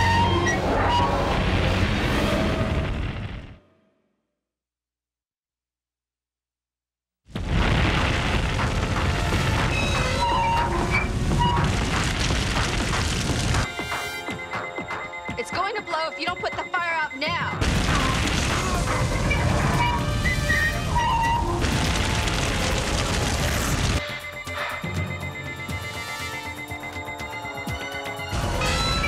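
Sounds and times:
music: 0.0 - 1.4, 8.7 - 29.0
booming explosion rumble: 1.2 - 3.6, 7.3 - 13.7, 17.6 - 24.0.

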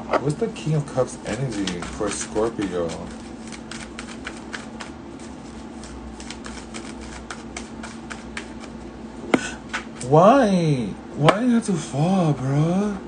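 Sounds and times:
cards being shuffled: 1.2 - 8.8.

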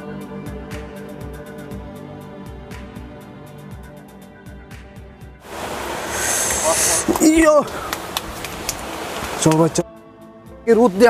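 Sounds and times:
background music: 0.0 - 11.0
rushing water: 5.4 - 9.9.

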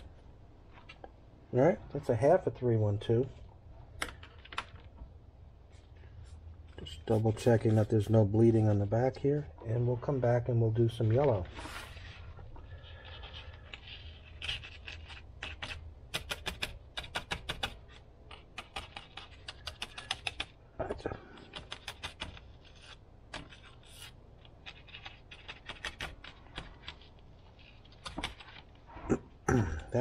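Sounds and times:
paintbrush tapping and scratching: 13.0 - 28.8.

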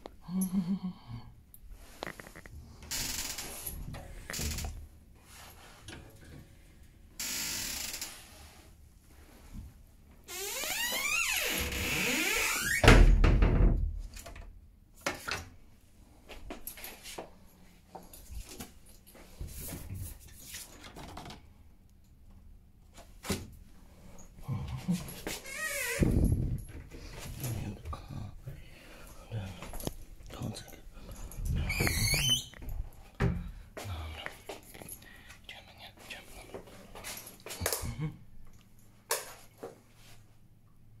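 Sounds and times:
wardrobe door creaking: 10.3 - 13.8, 25.4 - 26.3, 31.5 - 32.6.

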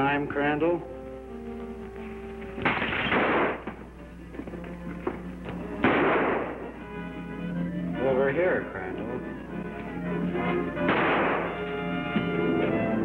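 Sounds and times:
dramatic background music: 0.8 - 13.0
gunshots: 2.6 - 3.8, 5.8 - 6.7, 10.8 - 11.8.

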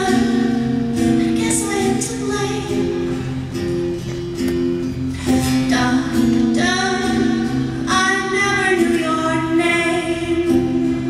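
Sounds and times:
woman singing slow song: 0.0 - 3.3, 5.2 - 11.0
acoustic guitar: 0.0 - 11.0.

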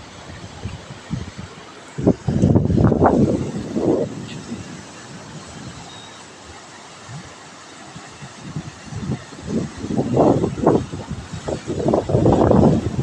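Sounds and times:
steady rushing hiss: 0.0 - 13.0
wind buffeting microphone: 0.0 - 13.0.

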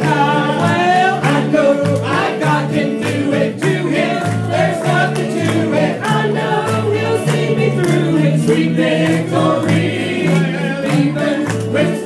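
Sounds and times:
band playing: 0.0 - 12.0
gospel group singing in harmony: 0.0 - 12.0.

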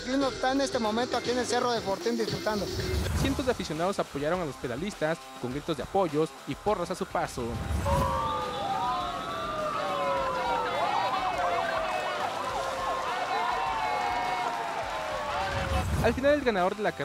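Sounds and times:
sirens wailing: 7.8 - 15.8
spectators shouting and cheering: 7.8 - 16.4.

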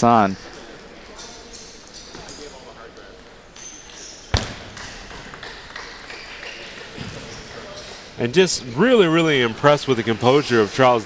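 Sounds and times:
table tennis ball clicks: 3.9 - 6.9.

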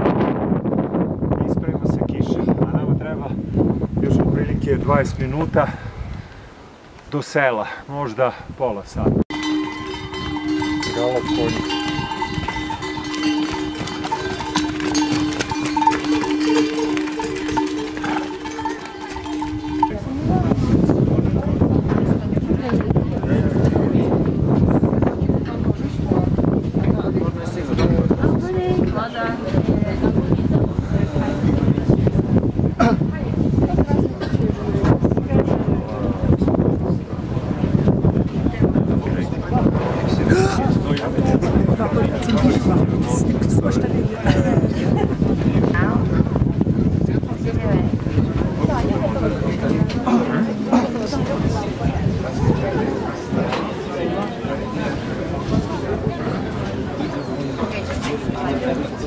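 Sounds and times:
wind buffeting microphone: 0.0 - 7.0, 8.3 - 59.0
people talking: 1.4 - 3.4, 7.2 - 59.0
hooves clip-clopping on stone: 9.3 - 21.2
animal neck bells ringing: 9.3 - 21.3.

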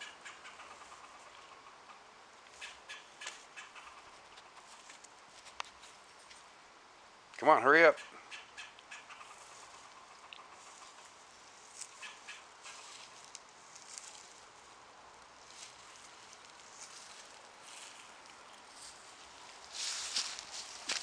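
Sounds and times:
quiet hiss: 0.0 - 21.0
faint rustles and scratches: 2.5 - 6.5, 9.2 - 14.8, 15.4 - 21.0.

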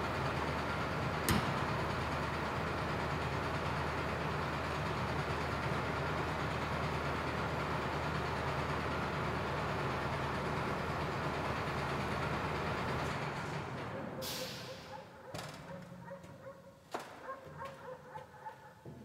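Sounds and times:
truck engine idling: 0.0 - 15.3.

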